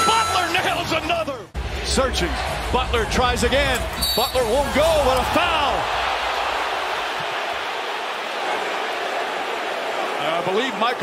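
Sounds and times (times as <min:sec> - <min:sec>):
large crowd noise: 0:00.0 - 0:11.0.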